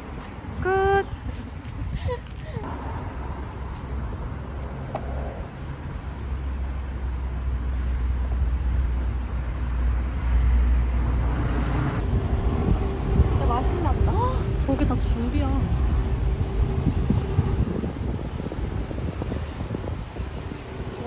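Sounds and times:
road traffic rumble: 0:00.0 - 0:21.0.

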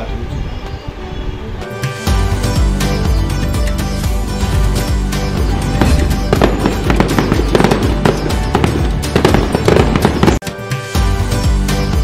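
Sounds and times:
festive background music: 0:00.0 - 0:12.0
fireworks bursting and crackling: 0:05.4 - 0:10.4.

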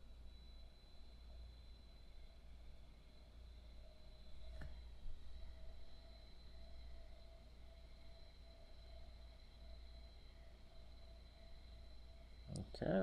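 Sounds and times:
faint high steady tone: 0:00.0 - 0:13.0
faint low hum: 0:00.0 - 0:13.0.

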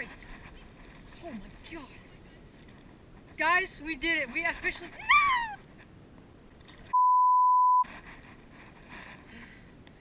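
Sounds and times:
high bleep tone: 0:06.9 - 0:07.8.

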